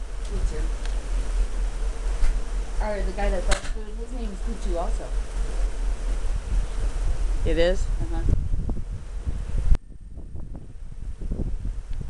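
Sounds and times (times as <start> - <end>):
faint constant hum: 0.0 - 12.0
wind buffeting microphone: 0.0 - 12.0.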